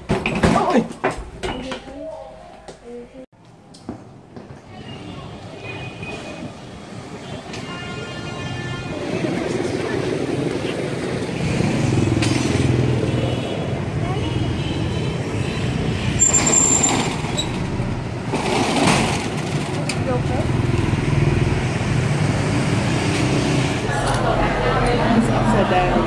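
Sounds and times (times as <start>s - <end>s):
vehicle and motorbike engines: 4.6s - 26.0s
brief high squeal: 16.2s - 17.5s
vehicle rushing past: 20.4s - 26.0s.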